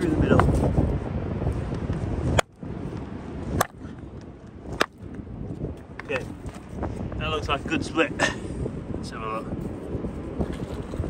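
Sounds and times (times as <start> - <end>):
hammer striking rock: 3.5 - 3.8, 4.8 - 5.0.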